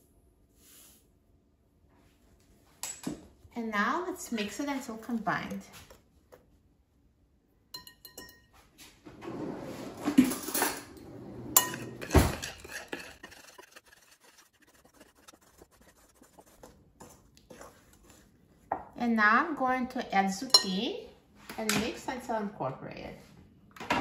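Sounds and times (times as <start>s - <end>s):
whisk scraping and clinking glass bowl: 7.8s - 8.5s, 11.5s - 18.3s.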